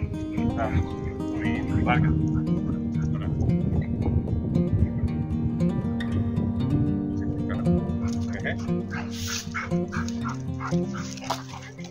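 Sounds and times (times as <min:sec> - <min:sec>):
dogs yipping and barking: 0:00.0 - 0:02.8, 0:07.9 - 0:11.9
background music: 0:04.5 - 0:11.9.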